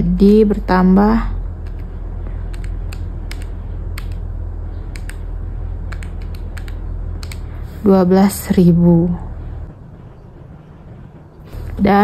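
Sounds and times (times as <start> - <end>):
steady low hum: 0.0 - 12.0
calculator keys clicking: 1.6 - 4.2, 4.9 - 5.3, 5.9 - 7.5.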